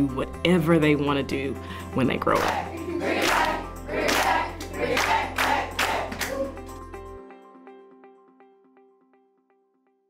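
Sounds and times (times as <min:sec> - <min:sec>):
background music: 0:00.0 - 0:10.0
rhythmic clapping: 0:02.3 - 0:06.8
group cheering: 0:02.4 - 0:06.7.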